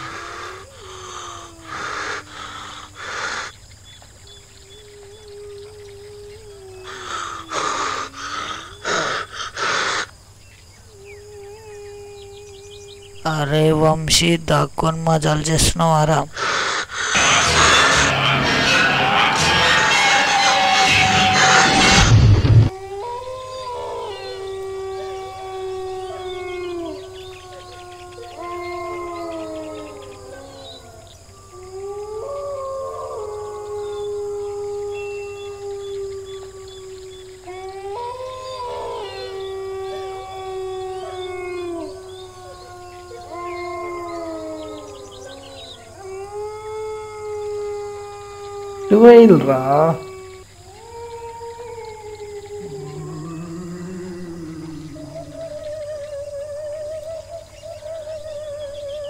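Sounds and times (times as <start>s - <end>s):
dogs howling: 0.0s - 59.0s
loud burst of noise: 17.1s - 22.7s.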